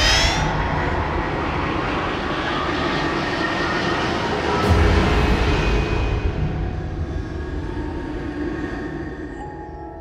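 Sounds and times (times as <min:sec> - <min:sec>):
low rumbling drone: 0:00.0 - 0:02.3.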